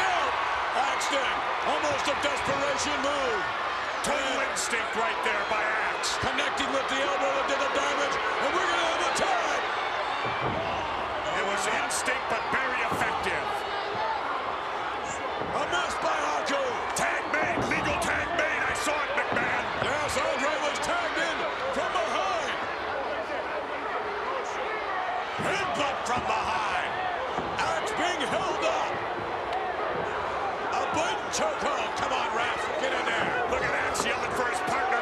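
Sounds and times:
crowd shouting and cheering: 0.0 - 35.0.

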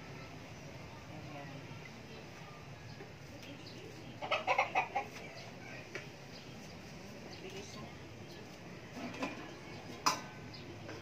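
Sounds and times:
low background noise: 0.0 - 11.0
chicken clucking: 3.7 - 5.8.

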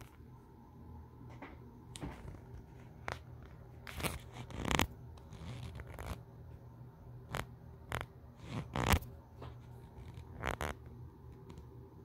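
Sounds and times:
camera handling rubs and scrapes: 3.8 - 6.2.

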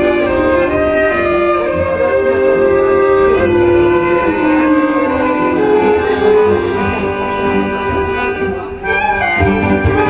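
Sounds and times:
accordion: 0.0 - 10.0
bowed violin: 0.0 - 10.0
flute: 0.0 - 10.0.

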